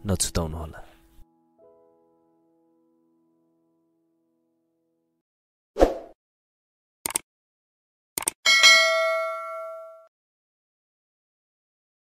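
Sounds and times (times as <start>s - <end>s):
quick clicks: 7.0s - 7.2s, 8.2s - 8.4s
bright bell ding: 8.5s - 10.1s.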